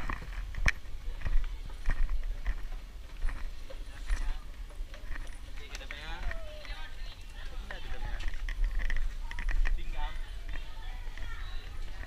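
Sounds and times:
footsteps on outdoor staircase: 0.0 - 12.0.

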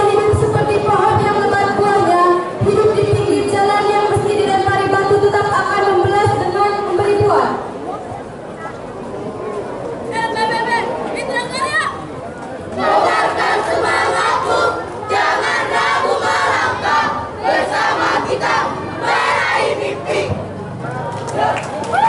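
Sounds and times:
group chanting a yell: 12.8 - 20.3.

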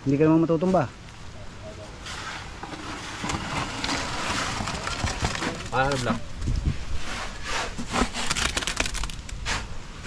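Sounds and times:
gritty scraping of wet concrete: 2.0 - 9.8.

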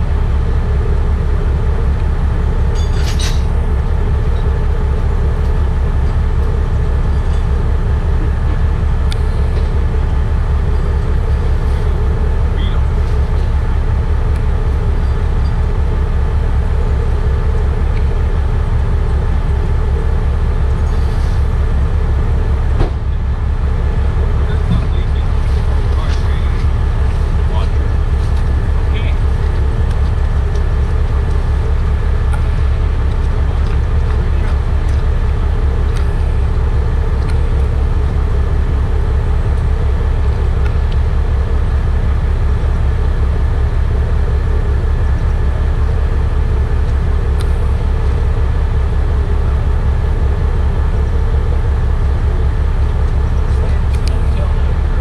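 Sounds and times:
truck engine idling: 0.0 - 55.0.

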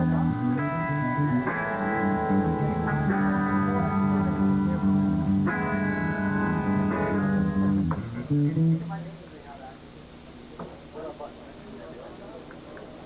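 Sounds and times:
electric guitar ringing notes: 0.0 - 9.2
room noise: 0.0 - 13.0.

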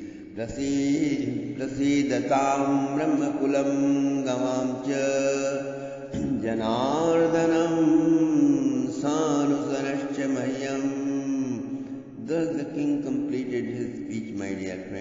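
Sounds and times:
man chanting melodically: 0.0 - 15.0.

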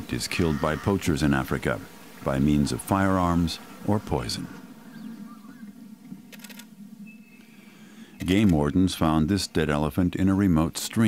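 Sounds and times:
camera shutter clicks: 6.3 - 6.7.

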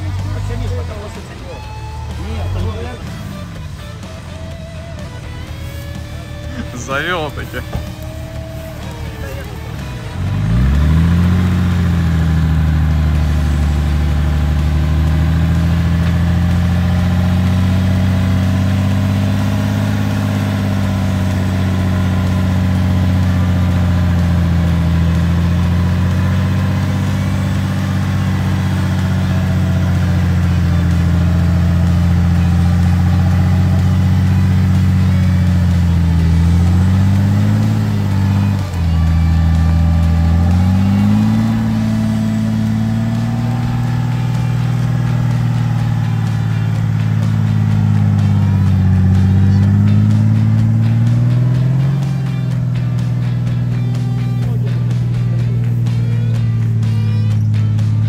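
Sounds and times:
diesel engine revving: 0.0 - 58.0.

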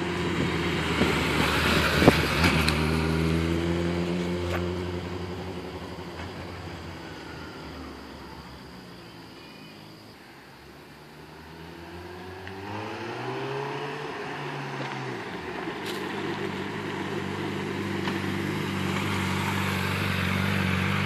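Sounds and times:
motorcycle engine approaching: 0.0 - 9.2, 11.0 - 21.0.

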